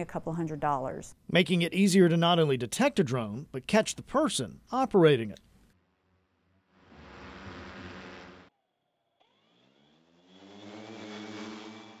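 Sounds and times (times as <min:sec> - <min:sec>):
drone rotors buzzing: 0:05.8 - 0:12.0.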